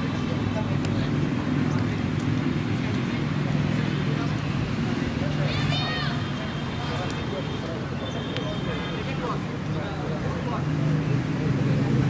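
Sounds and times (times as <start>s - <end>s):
outdoor chatter of voices: 0.0s - 12.0s.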